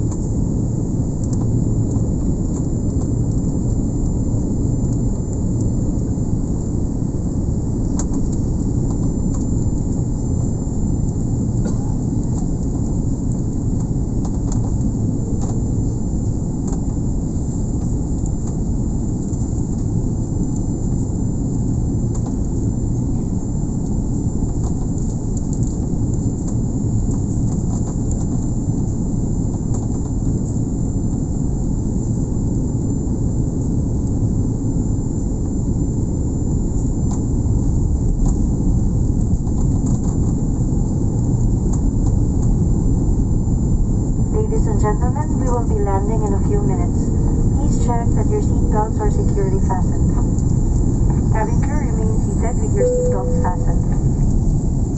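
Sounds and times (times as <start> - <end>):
airliner engines and airflow rumble: 0.0 - 54.9
high-pitched whine: 44.3 - 54.9.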